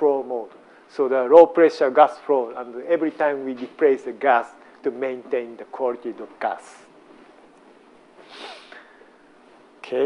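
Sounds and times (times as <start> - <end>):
faint room noise: 0.0 - 10.0
soft intake of breath: 8.2 - 9.3.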